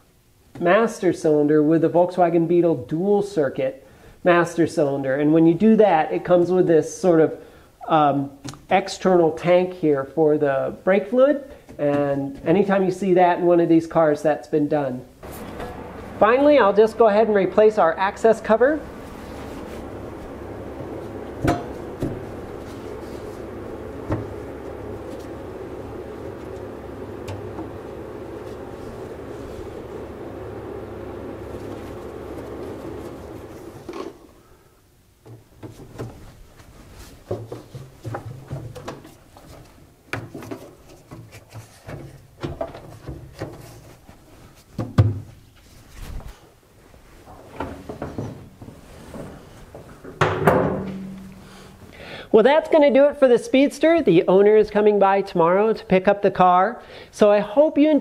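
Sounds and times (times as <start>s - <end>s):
steady heater hum: 0.0s - 40.1s, 46.5s - 58.0s
tools and panel clunking: 15.2s - 16.7s, 18.8s - 29.2s, 49.8s - 51.4s.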